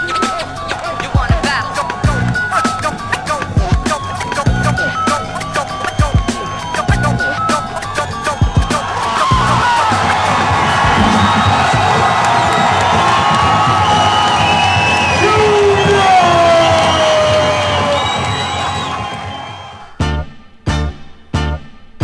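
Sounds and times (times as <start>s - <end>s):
music with steady beat: 0.0s - 14.4s
crowd cheering and shouting: 0.0s - 20.0s.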